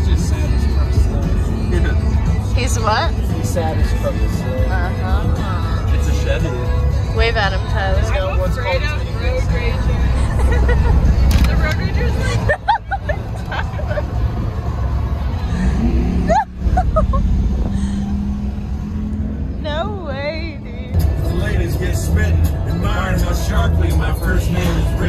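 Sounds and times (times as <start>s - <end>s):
music: 0.0s - 16.5s, 19.8s - 25.0s
road rumble inside car: 0.0s - 25.0s
people talking: 2.6s - 6.6s, 7.2s - 10.6s, 11.3s - 14.0s, 19.6s - 25.0s.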